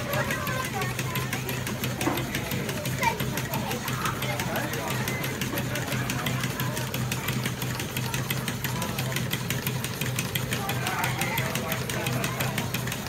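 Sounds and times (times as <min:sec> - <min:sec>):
fast even clicking: 0:00.0 - 0:13.0
model engines running: 0:00.0 - 0:13.0.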